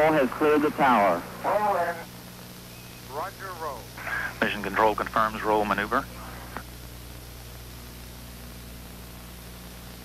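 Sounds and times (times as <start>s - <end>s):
low electrical hum: 0.0s - 10.0s
steady tape hiss: 0.0s - 10.0s.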